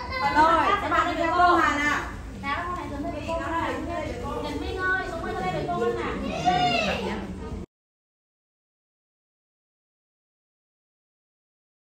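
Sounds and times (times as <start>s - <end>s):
high child's voice: 0.0s - 0.6s, 4.5s - 7.2s
children talking and calling out: 0.0s - 7.7s.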